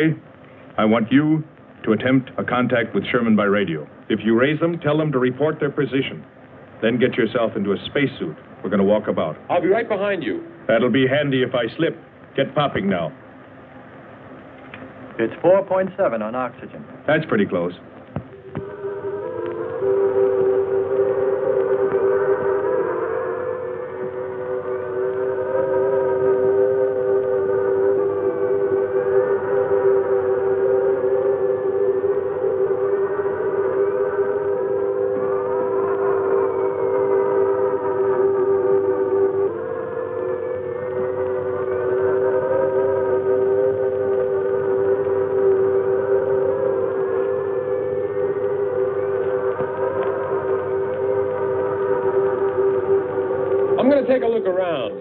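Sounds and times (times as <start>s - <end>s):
wavering electronic drone: 18.2s - 55.0s
gliding high tones: 18.3s - 55.0s.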